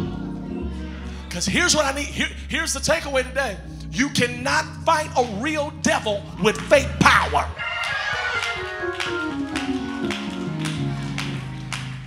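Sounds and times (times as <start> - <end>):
keyboard playing held notes: 0.0 - 7.6, 8.2 - 12.0.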